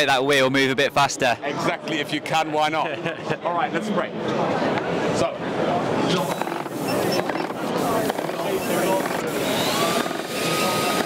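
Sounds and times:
crowd chatter: 0:00.0 - 0:11.0
paint sprayer hissing: 0:06.2 - 0:11.0.

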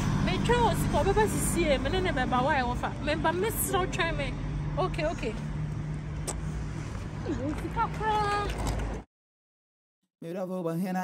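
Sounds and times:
road traffic hum and rumble: 0:00.0 - 0:09.1
woman's voice: 0:00.2 - 0:05.4, 0:07.2 - 0:08.6.

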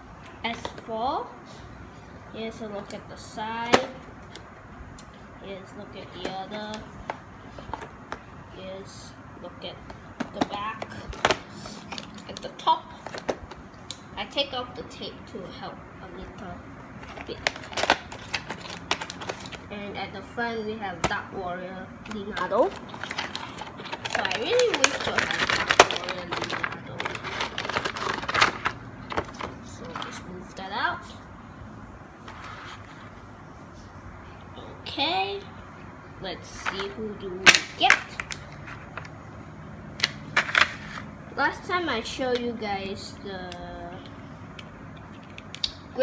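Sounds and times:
tape peeling crackles: 0:17.2 - 0:19.6, 0:22.1 - 0:29.4.

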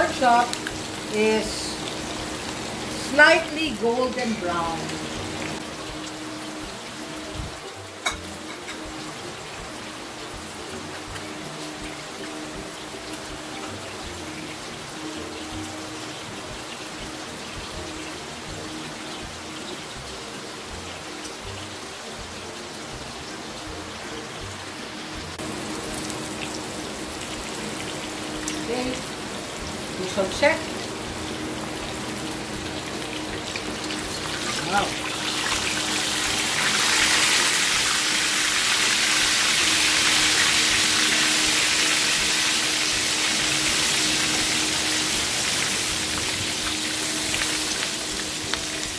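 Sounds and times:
meat sizzling in a pan: 0:00.0 - 0:48.9.

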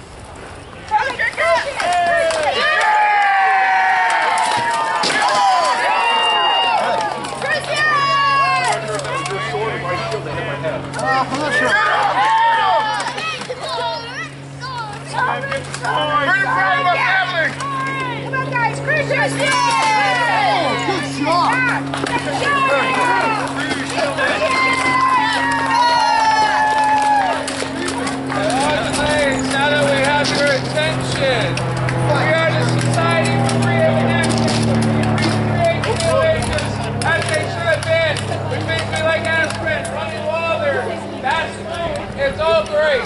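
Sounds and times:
onlookers chattering: 0:00.6 - 0:43.0
steady low drone: 0:02.2 - 0:43.0
children's voices: 0:11.0 - 0:23.6.

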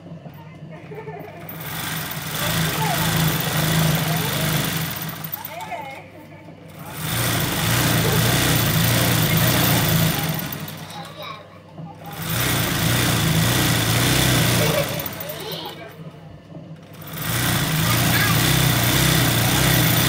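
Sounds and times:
electric sewing machine stitching: 0:01.4 - 0:05.6, 0:06.7 - 0:11.3, 0:12.0 - 0:15.8, 0:16.8 - 0:20.0.

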